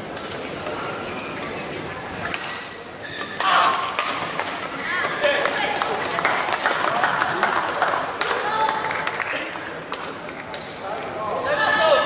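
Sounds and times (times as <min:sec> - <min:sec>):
spectators chatter echoing: 0:00.0 - 0:12.0.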